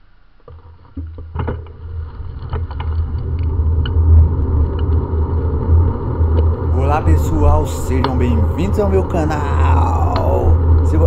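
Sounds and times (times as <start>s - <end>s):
bicycle road rumble: 0.5s - 11.0s.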